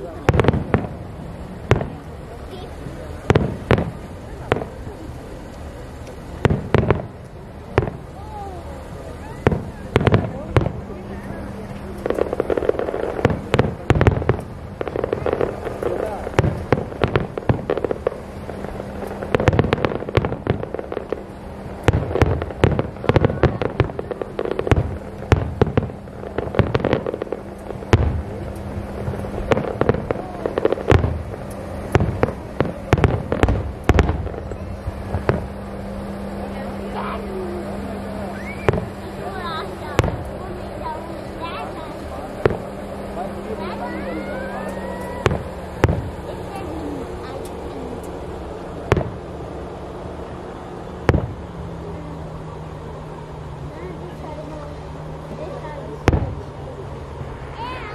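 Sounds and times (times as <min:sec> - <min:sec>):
firework shells bursting: 0:11.6 - 0:36.5, 0:44.5 - 0:49.6.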